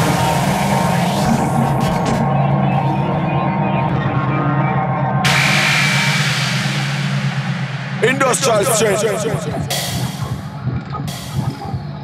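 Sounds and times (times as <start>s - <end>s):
electronic bass with low hits: 0.0s - 4.1s, 5.2s - 12.0s
burst of hiss with falling tone: 5.3s - 10.4s.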